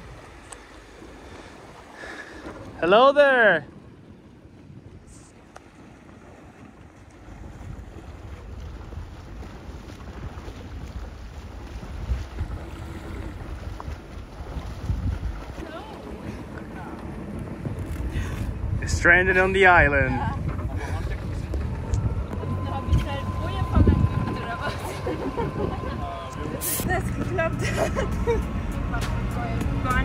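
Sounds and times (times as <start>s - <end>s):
wind rumbling on microphone: 0.0s - 2.9s, 3.6s - 30.0s
sea water rushing past boat: 0.0s - 30.0s.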